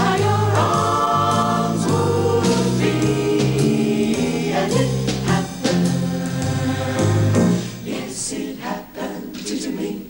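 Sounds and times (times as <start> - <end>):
mixed choir singing unaccompanied: 0.0 - 10.0.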